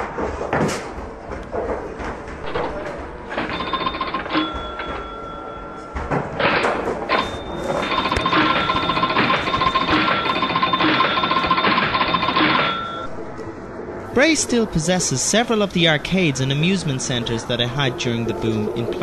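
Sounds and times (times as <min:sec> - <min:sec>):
arcade machine chimes and clatter: 0:02.4 - 0:13.1
electric bells ringing: 0:03.2 - 0:13.1.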